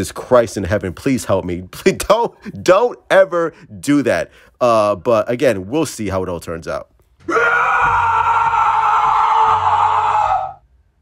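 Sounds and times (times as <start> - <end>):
man screaming: 7.3 - 10.6.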